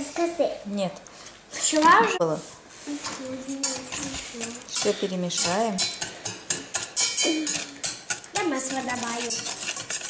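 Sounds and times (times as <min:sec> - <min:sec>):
wire whisk scraping metal pot: 0:03.5 - 0:10.0.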